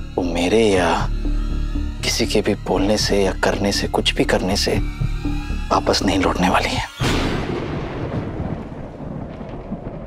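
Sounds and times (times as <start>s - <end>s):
low thunder-like rumble: 7.0s - 10.0s.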